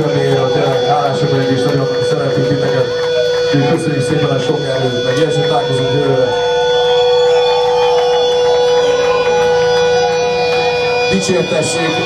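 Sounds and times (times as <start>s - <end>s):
electric guitar drone: 0.0s - 12.0s.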